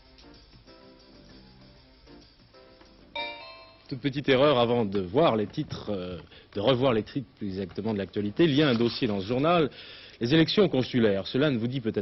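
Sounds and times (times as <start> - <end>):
faint television music: 0.0 - 3.2
bell-like chime: 3.2 - 3.9.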